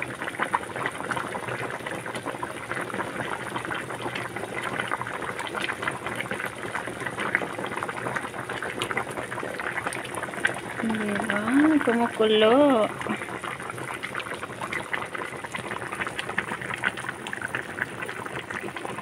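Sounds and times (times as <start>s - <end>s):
soup boiling and bubbling: 0.0s - 19.0s.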